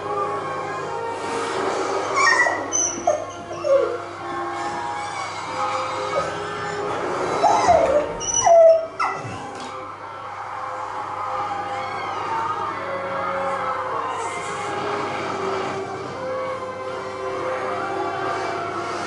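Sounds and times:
dog whining and whimpering: 2.1s - 4.1s, 7.2s - 9.5s.

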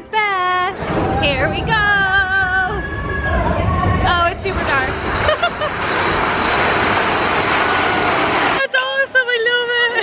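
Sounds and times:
ride vehicle rushing roar: 2.9s - 8.6s.

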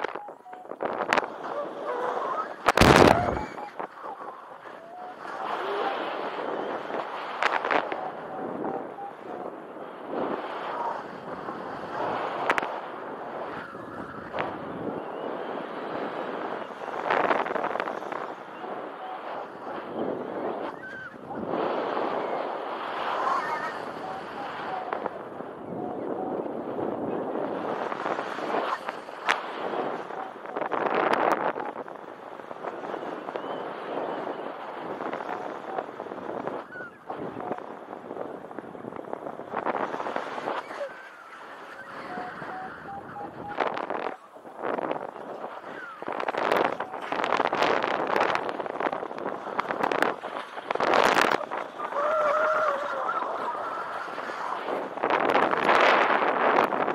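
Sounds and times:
wind on microphone: 0.0s - 56.9s.

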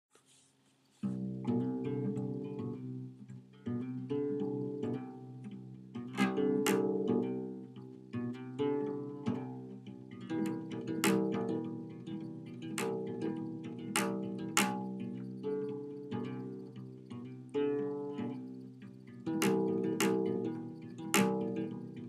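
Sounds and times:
acoustic guitar picked notes: 1.0s - 22.0s.

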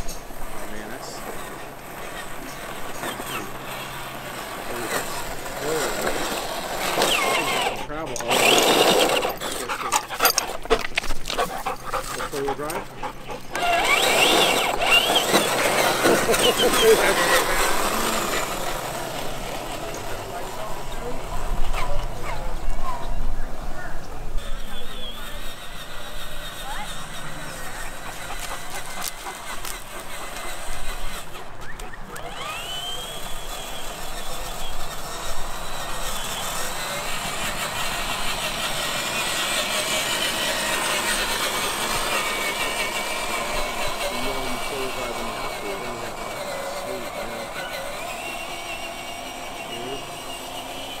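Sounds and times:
toy car electric motor whining: 0.0s - 51.0s.

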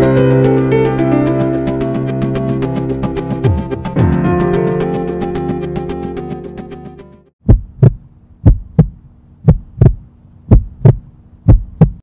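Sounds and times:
music: 0.0s - 7.4s
heartbeat thumps: 7.4s - 12.0s
faint steady hum: 7.5s - 12.0s.

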